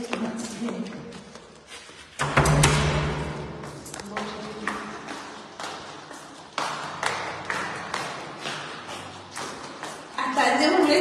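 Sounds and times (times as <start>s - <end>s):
footsteps going down stairs: 0.0s - 11.0s.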